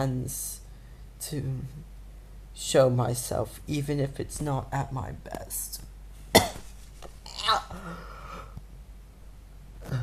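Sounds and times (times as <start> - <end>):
man coughing: 6.3 - 6.7.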